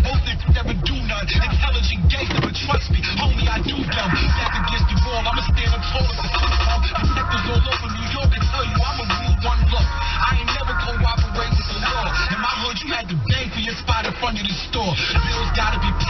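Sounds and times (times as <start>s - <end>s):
rapping over a bass-heavy beat: 0.0s - 16.0s.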